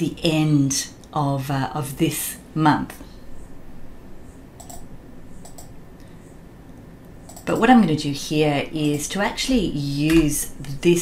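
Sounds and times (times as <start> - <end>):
computer mouse clicks: 4.6 - 5.8, 6.7 - 7.7.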